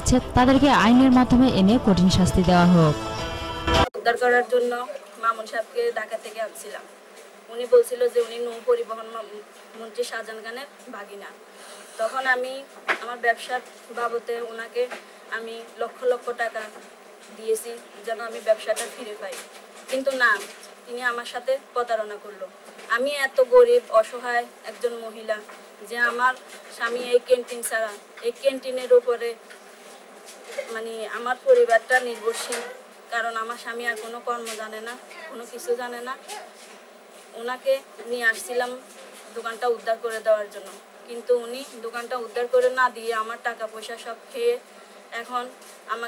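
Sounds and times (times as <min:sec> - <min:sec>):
woman speaking: 0:00.0 - 0:03.0, 0:04.0 - 0:06.9, 0:07.5 - 0:11.4, 0:12.0 - 0:29.4, 0:30.5 - 0:36.6, 0:37.3 - 0:46.0.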